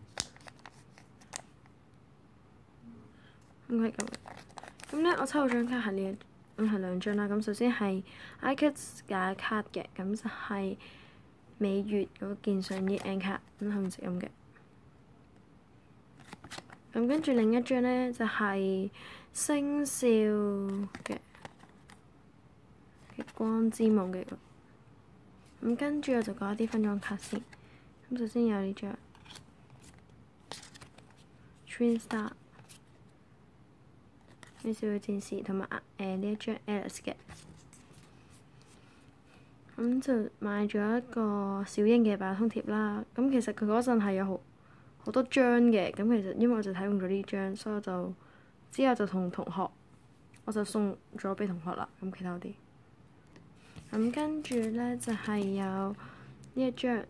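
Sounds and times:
plastic cards clicking and rustling: 0:00.0 - 0:01.6, 0:03.9 - 0:05.8, 0:12.6 - 0:14.0, 0:16.2 - 0:17.4, 0:20.7 - 0:22.0, 0:29.1 - 0:31.2, 0:31.9 - 0:33.0, 0:34.2 - 0:34.7, 0:53.8 - 0:55.6
paper envelope crackling: 0:00.1 - 0:01.5, 0:03.9 - 0:05.8, 0:29.1 - 0:31.2
woman speaking: 0:03.7 - 0:04.3, 0:04.9 - 0:10.8, 0:11.6 - 0:14.4, 0:16.9 - 0:21.4, 0:23.0 - 0:24.5, 0:25.5 - 0:29.0, 0:31.7 - 0:32.4, 0:34.6 - 0:37.2, 0:39.8 - 0:44.4, 0:45.0 - 0:49.8, 0:50.4 - 0:52.6, 0:53.8 - 0:57.0.

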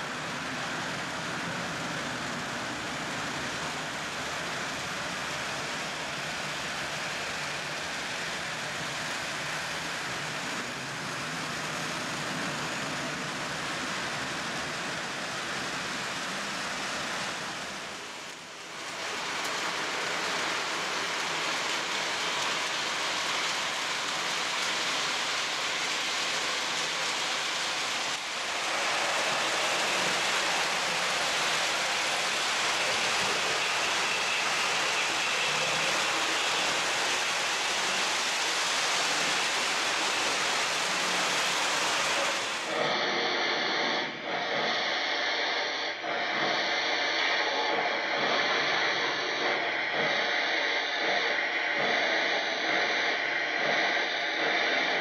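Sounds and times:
model train wheels rumbling on track: 0:00.0 - 0:43.0, 0:43.8 - 0:55.0.

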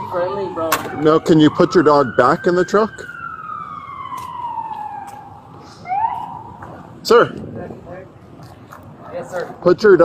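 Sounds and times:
emergency vehicle siren wailing: 0:00.0 - 0:07.6.

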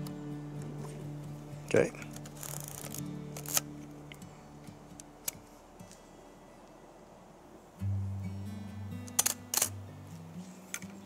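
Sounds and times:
plucked guitar music: 0:00.0 - 0:06.8, 0:07.8 - 0:11.0
camera mirror flipping: 0:02.1 - 0:03.7, 0:09.0 - 0:09.8
camera shutter clacks: 0:02.2 - 0:03.7, 0:09.0 - 0:09.8.

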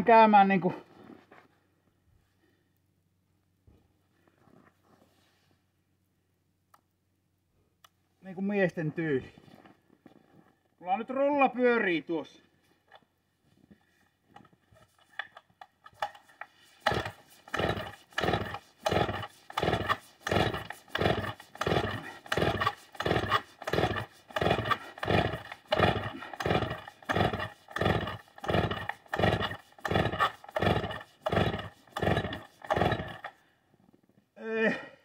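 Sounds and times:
chainsaw being pull-started: 0:14.4 - 0:33.4.

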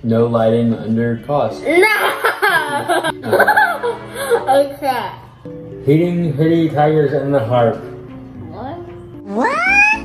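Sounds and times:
high-pitched rising cry: 0:09.3 - 0:10.0.

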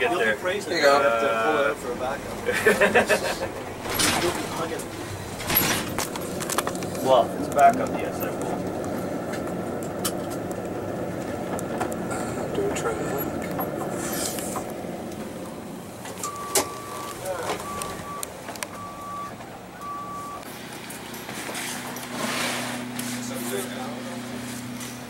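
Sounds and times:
van engine running: 0:00.0 - 0:25.0
short electronic beeps: 0:16.2 - 0:18.2, 0:18.8 - 0:20.4.

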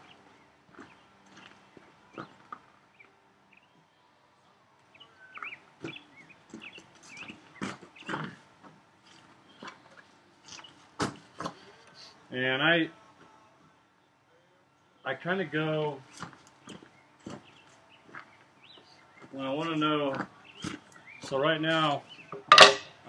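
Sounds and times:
bird chirps: 0:04.9 - 0:08.2.

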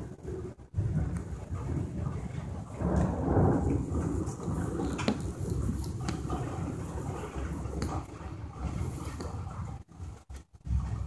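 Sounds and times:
deep steady rumble: 0:00.0 - 0:11.0
hail pelting: 0:00.0 - 0:11.0.

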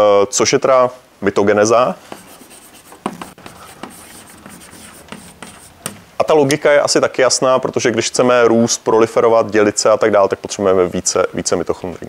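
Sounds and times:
chalk scratching on chalkboard: 0:02.1 - 0:06.0.

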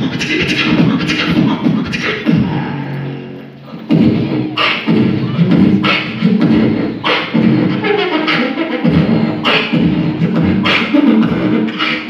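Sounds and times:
beatboxing beat with snare hits: 0:00.0 - 0:02.6, 0:03.7 - 0:12.0.

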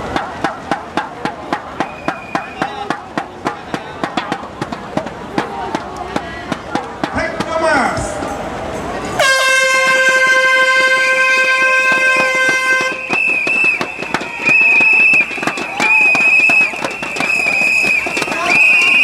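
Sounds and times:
crowd voices: 0:00.0 - 0:19.0
air horn blast: 0:09.2 - 0:13.2.

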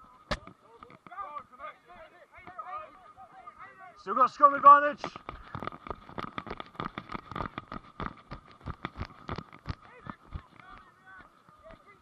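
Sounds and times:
running footfalls on grass: 0:04.9 - 0:12.0.

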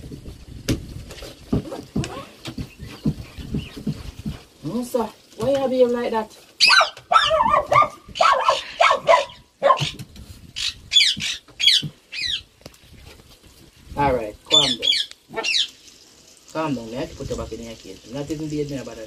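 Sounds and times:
small dog whining and yelping: 0:06.6 - 0:10.0.

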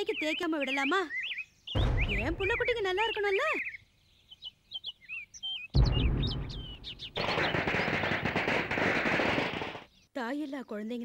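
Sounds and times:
birds chirping: 0:00.0 - 0:11.0
loud firecracker bang: 0:05.8 - 0:09.9
firecrackers crackling: 0:06.0 - 0:09.9.

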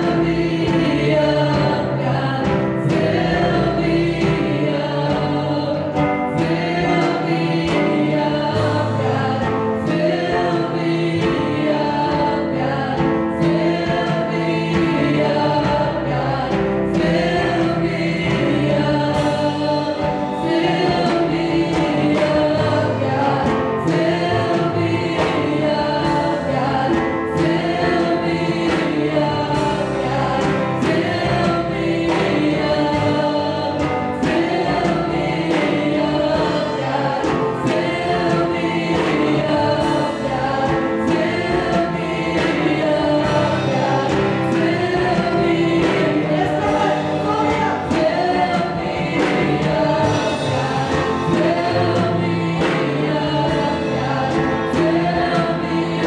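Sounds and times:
backing singers: 0:00.0 - 0:56.0
band playing steady beat: 0:00.0 - 0:56.0
woman singing into microphone: 0:00.0 - 0:56.0.

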